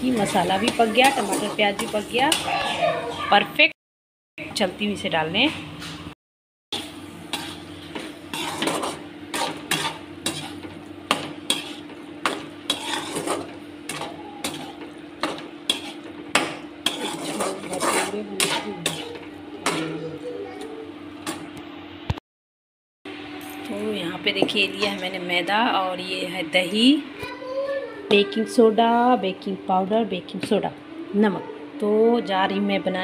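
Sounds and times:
spatula scraping a pan: 0.0 - 3.4, 6.8 - 20.2.

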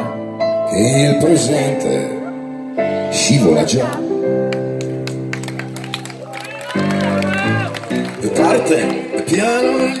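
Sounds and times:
held keyboard chords: 0.0 - 10.0.

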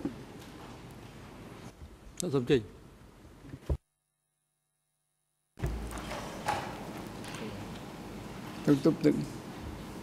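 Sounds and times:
courtroom background noise: 0.0 - 3.8, 5.6 - 10.0.

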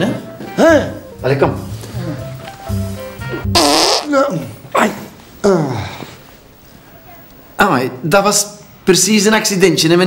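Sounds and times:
light background music: 0.0 - 4.4
comic fart sound effect: 3.4 - 4.3.

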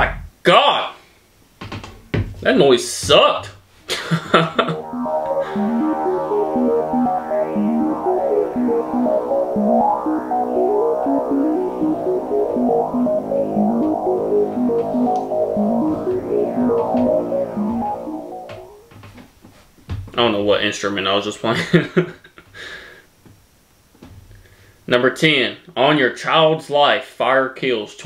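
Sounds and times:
synthesizer intro music: 4.5 - 19.0.

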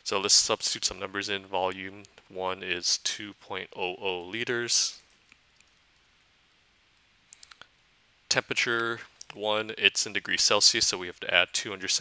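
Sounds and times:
faint quick clicks: 7.3 - 7.7.

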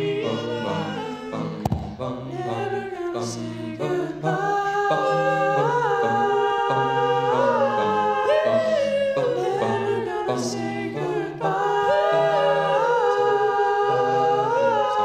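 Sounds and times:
male a cappella group singing: 0.0 - 15.0.

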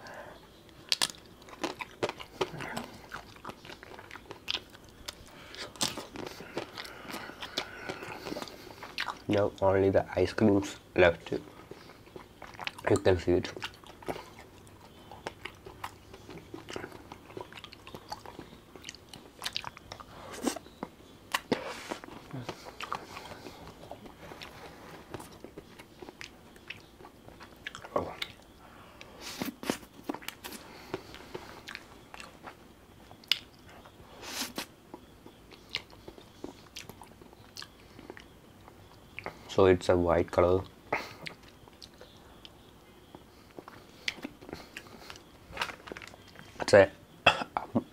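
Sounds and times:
biting and chewing ice cream: 0.4 - 9.7, 10.7 - 39.4, 40.4 - 46.8.

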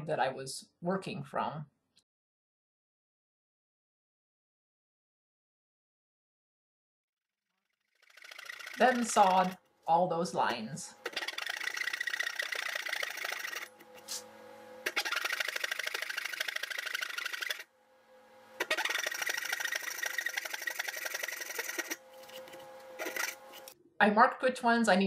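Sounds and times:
saw cutting wood: 8.0 - 9.6, 10.4 - 23.8.

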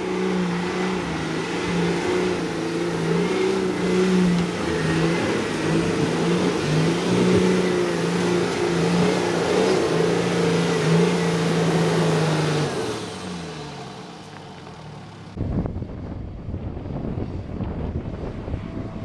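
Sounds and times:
car engine revving: 0.0 - 15.4.

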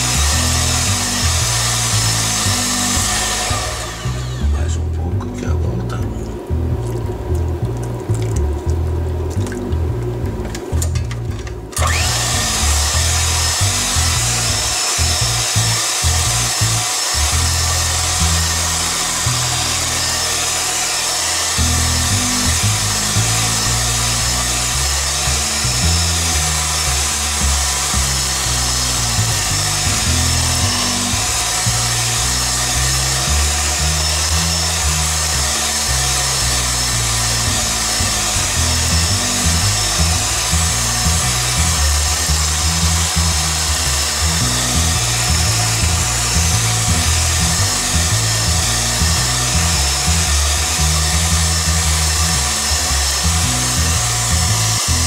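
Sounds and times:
background music: 0.0 - 55.0
electric hand mixer whipping: 0.0 - 55.0.

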